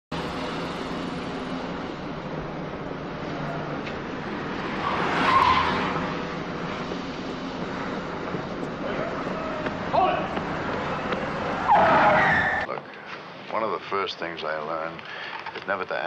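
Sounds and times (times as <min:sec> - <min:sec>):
car passing: 0:00.1 - 0:12.7
street traffic: 0:00.1 - 0:16.0
tire squeals: 0:03.3 - 0:12.7.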